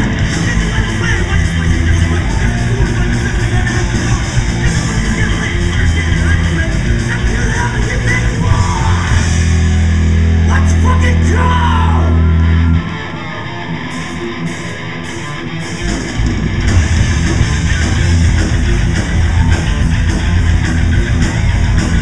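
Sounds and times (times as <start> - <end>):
metal band playing live: 0.0 - 22.0
quiet electric guitar part: 0.0 - 22.0.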